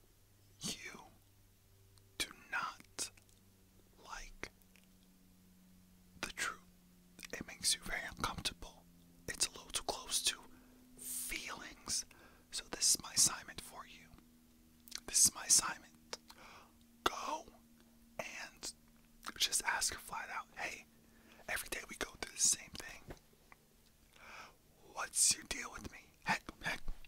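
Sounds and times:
man whispering: 0:00.6 - 0:01.2, 0:02.2 - 0:03.2, 0:04.0 - 0:04.6, 0:06.2 - 0:14.2, 0:14.9 - 0:17.6, 0:18.2 - 0:23.2, 0:24.2 - 0:27.0.

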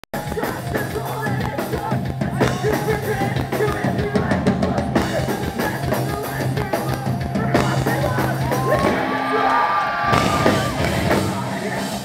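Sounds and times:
live rock band: 0:00.1 - 0:12.0.

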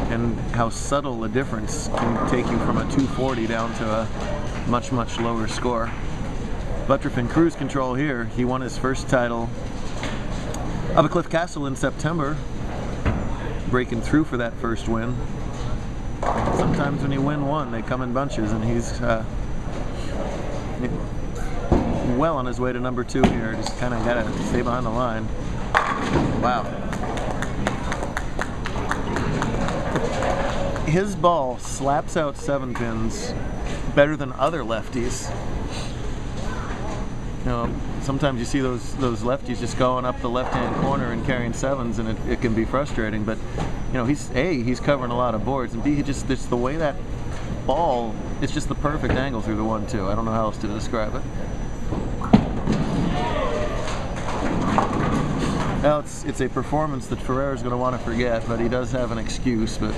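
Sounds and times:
bowling pins and balls clacking: 0:00.0 - 0:35.6, 0:36.2 - 0:59.9
faint voices: 0:10.3 - 0:27.0
bowling ball rumbling: 0:25.6 - 0:31.1, 0:51.9 - 0:55.8.

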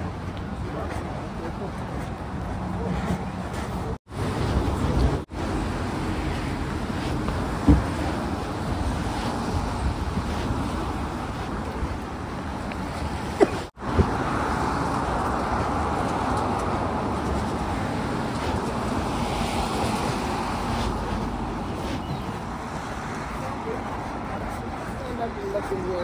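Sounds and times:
traffic on a wet road: 0:00.0 - 0:26.0.

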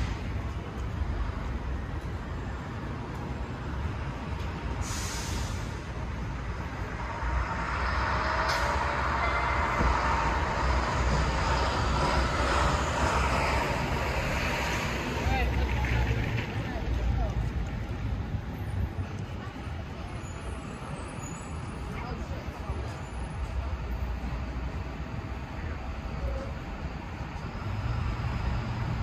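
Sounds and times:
traffic passing: 0:00.0 - 0:29.0.

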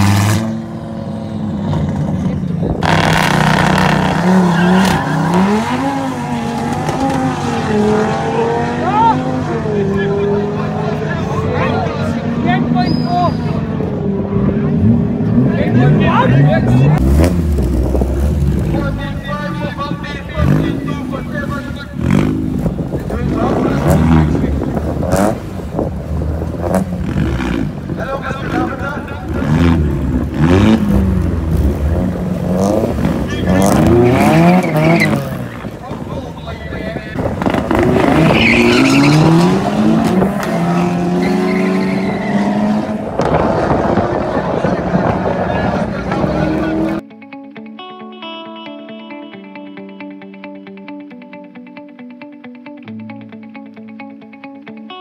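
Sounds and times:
racing cars revving and accelerating: 0:00.0 - 0:47.0.

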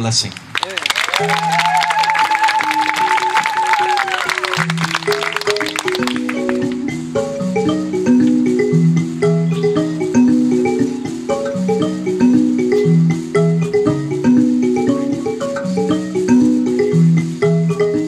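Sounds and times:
applause: 0:00.3 - 0:06.8
wavering high call: 0:01.0 - 0:16.3
mbira plucked notes: 0:01.1 - 0:18.0.

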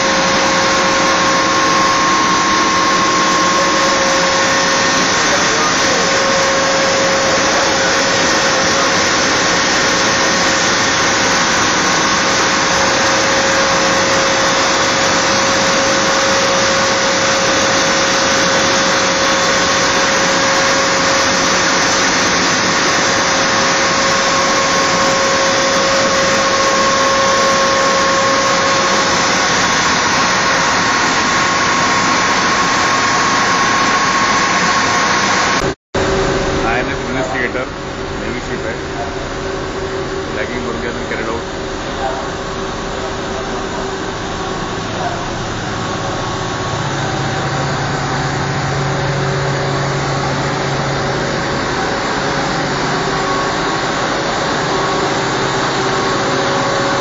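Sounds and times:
marine diesel engines running: 0:00.0 - 0:57.0.

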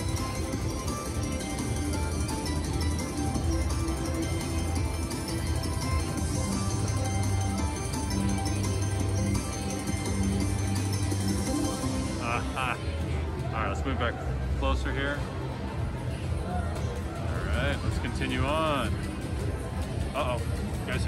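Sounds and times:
slot machine win music: 0:00.0 - 0:13.0.

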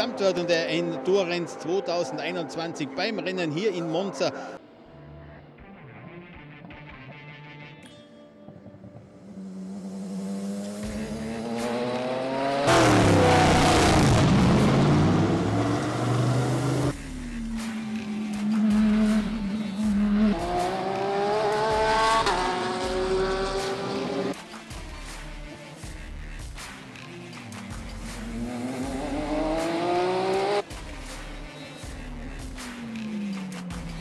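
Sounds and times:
racing car engines accelerating: 0:09.3 - 0:24.4, 0:27.8 - 0:30.6
race car engine steady low note: 0:12.7 - 0:17.7.

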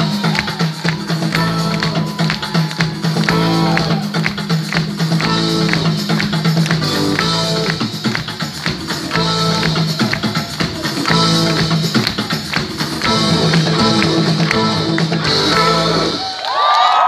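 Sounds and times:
live pop band playing: 0:00.0 - 0:16.3.

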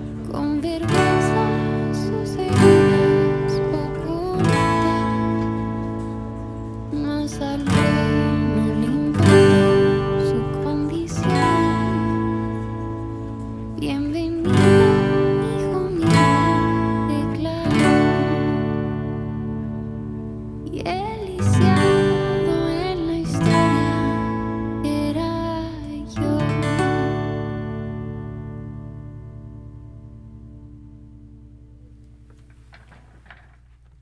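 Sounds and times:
acoustic guitar strummed chords: 0:00.0 - 0:33.6.

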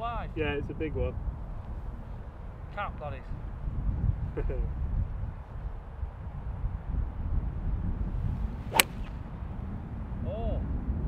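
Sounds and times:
golf club striking ball: 0:08.7 - 0:09.2.

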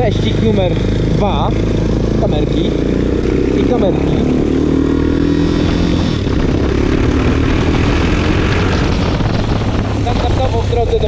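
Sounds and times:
motorcycle engine running: 0:00.0 - 0:11.0
road noise: 0:00.0 - 0:11.0
wind rushing over microphone: 0:00.0 - 0:11.0.

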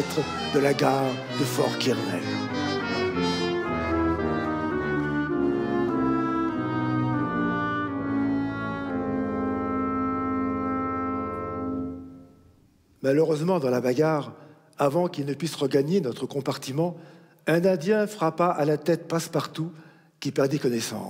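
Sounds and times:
orchestra playing: 0:00.0 - 0:12.4.

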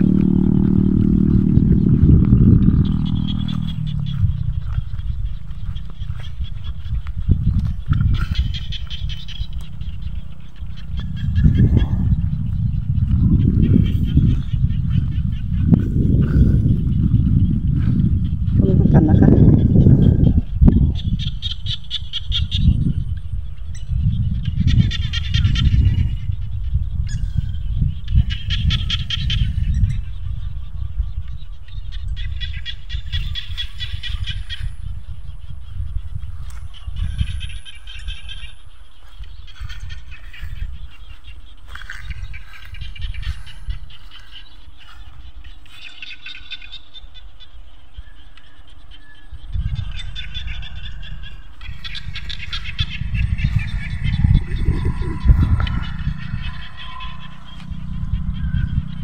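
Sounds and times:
frogs calling in rattling bursts: 0:00.0 - 0:47.9, 0:48.5 - 0:59.0
wind rumble on microphone: 0:00.0 - 0:59.0.

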